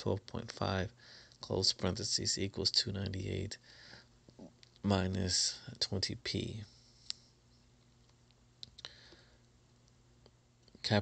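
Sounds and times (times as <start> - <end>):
person speaking: 0.0 - 3.6, 4.4 - 6.8
low steady hum: 0.0 - 11.0.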